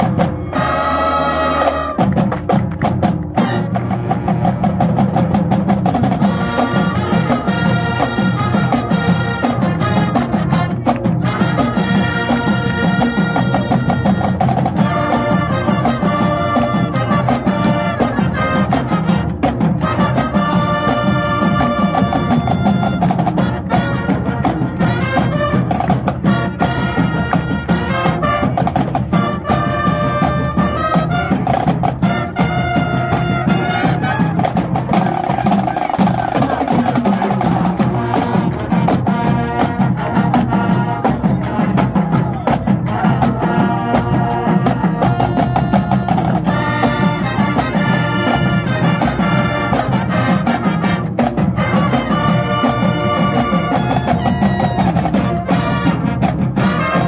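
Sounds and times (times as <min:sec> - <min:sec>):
trombones: 0:00.0 - 0:02.6, 0:03.2 - 0:57.0
trumpets: 0:00.0 - 0:02.6, 0:03.2 - 0:05.3, 0:05.9 - 0:57.0
bass drums: 0:00.0 - 0:57.0
snare drums: 0:00.0 - 0:57.0.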